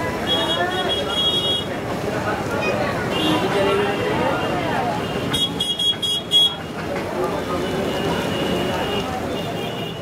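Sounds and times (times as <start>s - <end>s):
traffic: 0.0s - 10.0s
voices: 0.0s - 10.0s.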